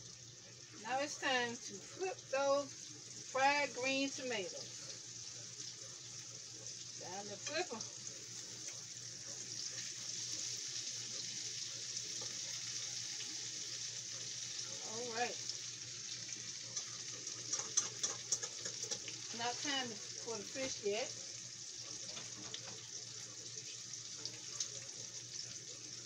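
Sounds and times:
food frying in hot grease: 0:00.0 - 0:26.0.

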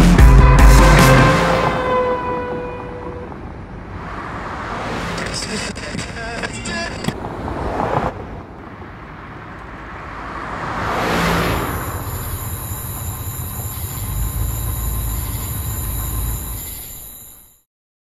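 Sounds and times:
car passing by: 0:01.0 - 0:06.3, 0:07.0 - 0:16.8
high-pitched ringing: 0:11.6 - 0:17.6.

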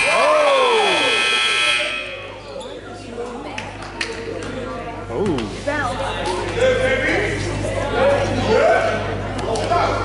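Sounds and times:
scoreboard buzzer: 0:00.0 - 0:02.4.

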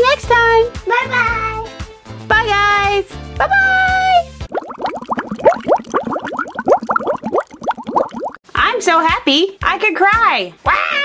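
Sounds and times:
rapid rising bloops: 0:04.5 - 0:08.4.

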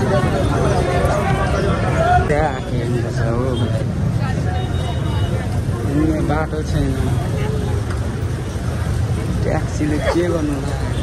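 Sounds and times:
passers-by talking: 0:00.0 - 0:11.0
road traffic rumble: 0:00.0 - 0:11.0.

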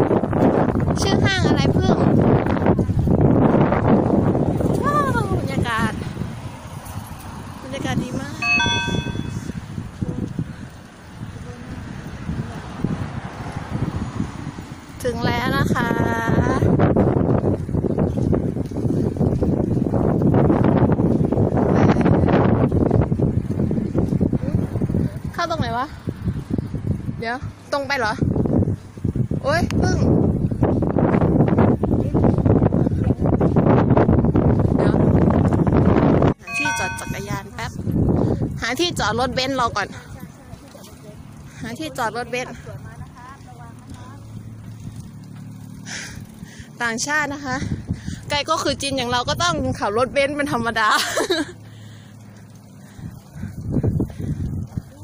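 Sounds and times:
wind on microphone: 0:00.0 - 0:40.4, 0:41.2 - 0:50.7, 0:52.5 - 0:55.0
road traffic: 0:00.0 - 0:55.0
woman's voice: 0:01.0 - 0:02.2, 0:04.8 - 0:06.1, 0:07.6 - 0:09.4, 0:15.0 - 0:16.8, 0:25.3 - 0:26.0, 0:36.4 - 0:37.9, 0:38.5 - 0:44.4, 0:46.8 - 0:51.4
held several-toned note: 0:08.4 - 0:09.5, 0:36.5 - 0:37.4.

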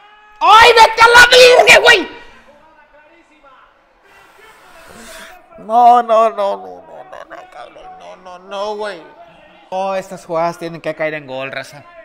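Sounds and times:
people shouting: 0:00.4 - 0:02.4.

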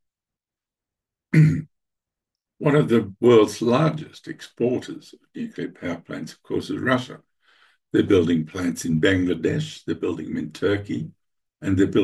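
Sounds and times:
man clearing his throat: 0:01.4 - 0:01.7.

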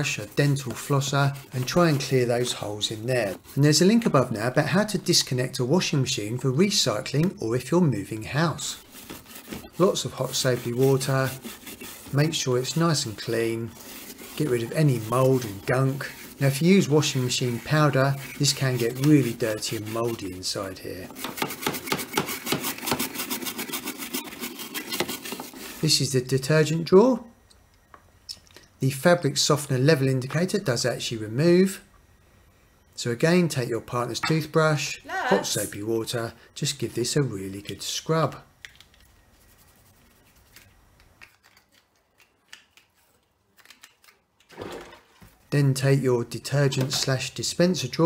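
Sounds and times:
brush scrubbing plastic: 0:00.0 - 0:26.0, 0:39.0 - 0:40.7.

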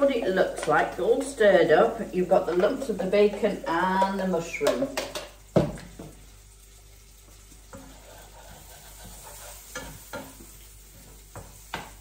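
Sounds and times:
tomatoes frying in a pan: 0:00.0 - 0:12.0
light knocks in a pan: 0:04.6 - 0:06.2, 0:11.3 - 0:12.0.

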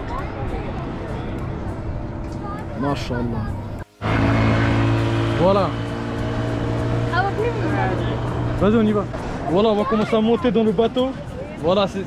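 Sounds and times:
people's voices: 0:00.0 - 0:03.9, 0:06.9 - 0:12.0
outboard boat motor humming: 0:03.8 - 0:11.3.

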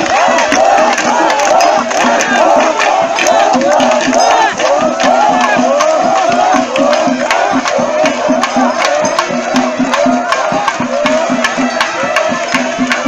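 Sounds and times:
crowd of men shouting and cheering: 0:00.0 - 0:13.0
sharp percussion strikes: 0:00.0 - 0:13.0.

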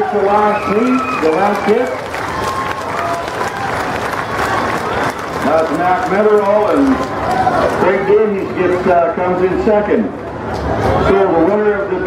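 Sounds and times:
spectators applauding: 0:00.0 - 0:09.0
scattered crowd voices: 0:00.0 - 0:12.0.

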